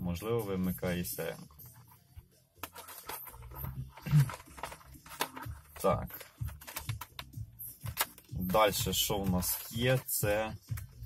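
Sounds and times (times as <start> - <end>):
plastic parts clicking and rustling: 2.6 - 11.0.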